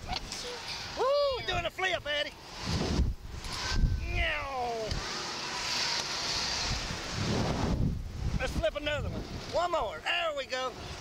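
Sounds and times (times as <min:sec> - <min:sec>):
wind buffeting microphone: 0:01.2 - 0:05.1, 0:06.2 - 0:10.1.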